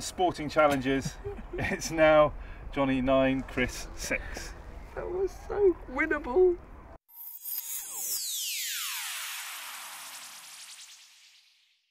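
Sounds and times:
electronic falling pitch sweep: 7.1 - 11.9.

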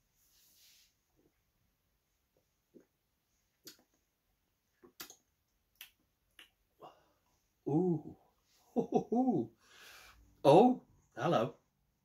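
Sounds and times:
lip and tongue clicks: 3.5 - 4.0, 4.7 - 6.6.

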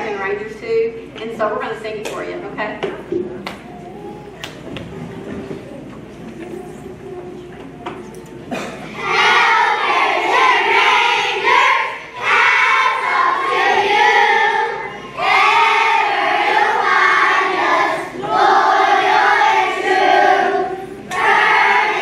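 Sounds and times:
low murmur: 2.2 - 22.0
children's choir singing: 3.8 - 22.0.

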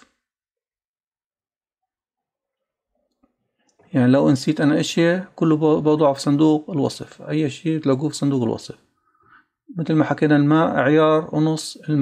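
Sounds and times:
man speaking: 3.8 - 8.9, 9.7 - 12.0.

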